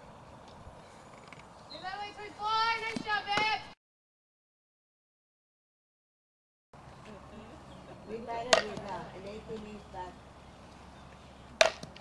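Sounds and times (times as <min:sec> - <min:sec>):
people talking: 0:01.8 - 0:03.6, 0:07.1 - 0:10.2.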